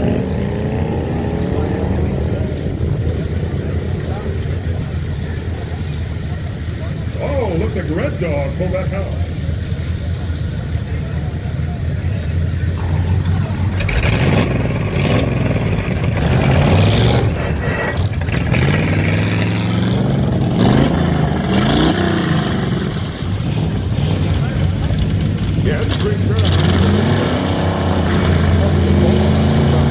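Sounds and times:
car engines idling: 0.0s - 29.9s
engine throttle blips: 0.0s - 29.9s.

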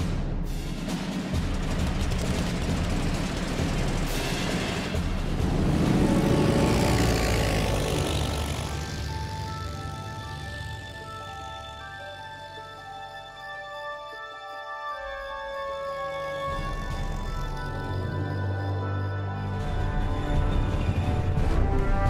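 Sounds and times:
soundtrack music: 0.0s - 22.0s
propeller aircraft engine drone: 1.1s - 13.8s, 15.9s - 22.0s.

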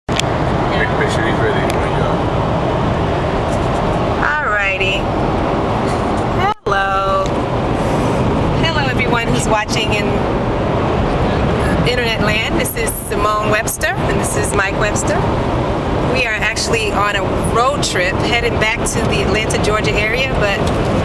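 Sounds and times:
car road and engine noise: 0.1s - 21.0s
voices: 0.5s - 2.3s, 3.4s - 5.1s, 5.8s - 15.4s, 16.0s - 21.0s.

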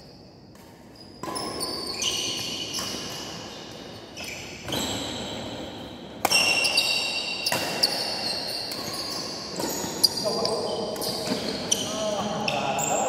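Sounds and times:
racket hitting shuttlecock: 0.5s - 10.2s
sneakers squeaking on court floor: 0.8s - 13.0s.

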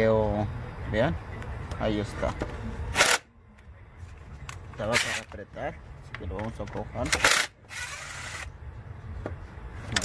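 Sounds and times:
cordless driver spinning bolt: 7.1s - 8.5s.

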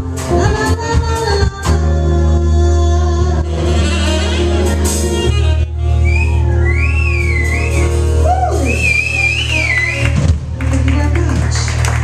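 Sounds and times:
jazz combo playing: 0.0s - 12.0s.

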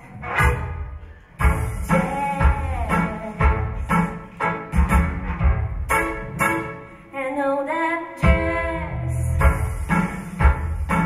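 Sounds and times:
thumping beat accompaniment: 0.0s - 6.8s, 8.2s - 11.0s
woman singing jazz: 1.8s - 4.0s, 7.1s - 10.2s.

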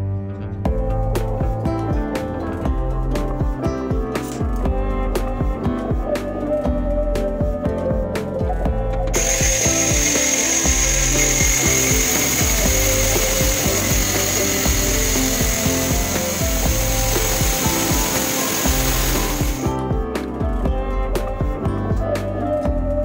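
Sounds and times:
background music: 0.0s - 23.0s
angle grinder cutting steel pipe: 9.2s - 19.7s.

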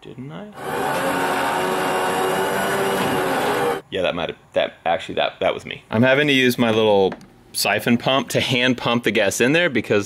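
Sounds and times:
winch whining under load: 0.6s - 3.8s.

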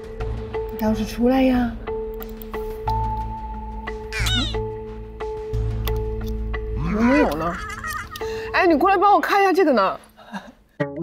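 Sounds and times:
background music with held drone: 0.0s - 9.0s
comic meow-like sliding sound effect: 4.1s - 4.6s.

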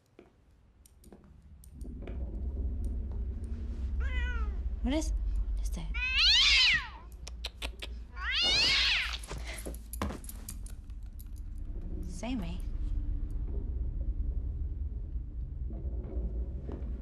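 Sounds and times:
cat meowing: 6.0s - 7.1s, 8.2s - 9.2s.

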